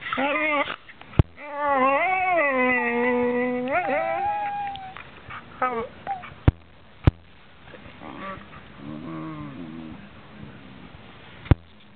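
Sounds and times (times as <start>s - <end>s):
dog whining: 1.4s - 5.0s, 5.6s - 6.4s
dog moaning grumble: 8.0s - 10.6s.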